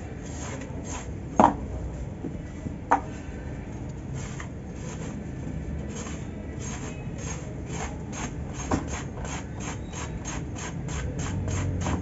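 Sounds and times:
knife scraping cement block: 0.2 - 1.2, 5.9 - 12.0.

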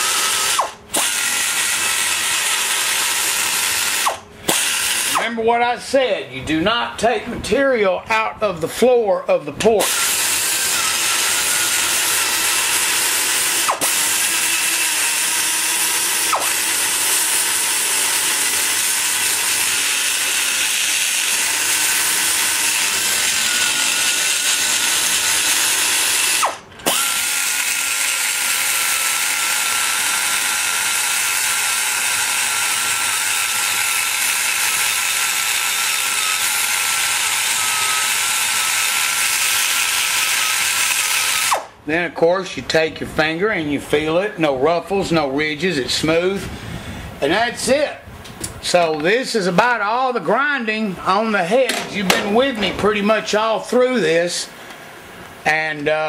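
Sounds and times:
die grinder grinding metal: 0.0 - 5.3, 9.7 - 41.7.

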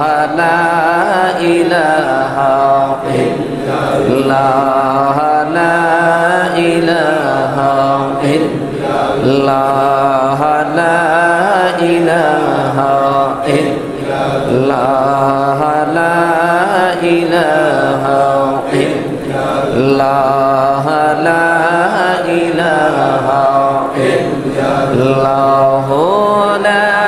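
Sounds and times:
man chanting into a microphone: 0.0 - 27.0.

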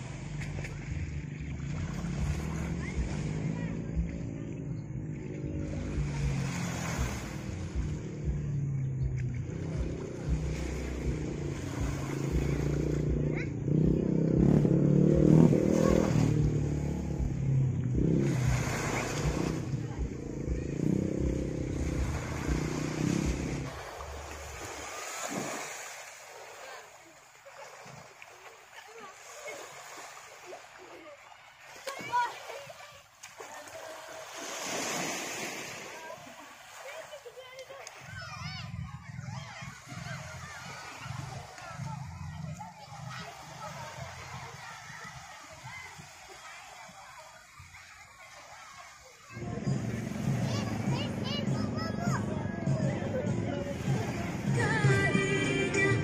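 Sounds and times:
boat engine droning: 0.0 - 56.0
small waves washing on shore: 0.0 - 56.0.

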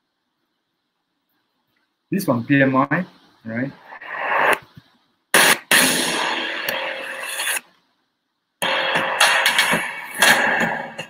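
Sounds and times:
sound effects burst: 5.3 - 7.6
promotional video music: 8.6 - 11.0.

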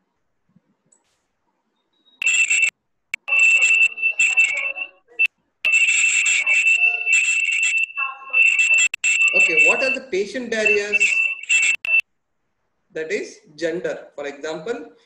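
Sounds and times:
high-pitched electronic alarm: 2.2 - 12.0.

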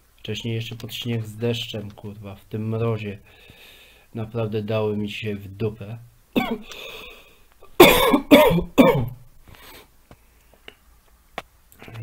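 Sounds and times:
man coughing: 6.4 - 6.9, 7.8 - 9.2.

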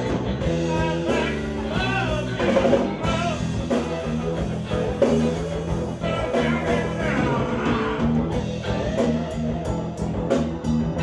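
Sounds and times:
blues-rock band playing: 0.0 - 11.0
man singing: 0.4 - 4.1, 5.9 - 8.2.

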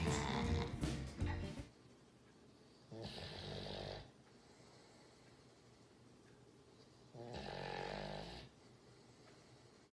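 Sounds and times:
dog snoring: 0.0 - 0.8, 2.9 - 4.1, 7.1 - 8.6
faint room noise: 0.0 - 10.0.

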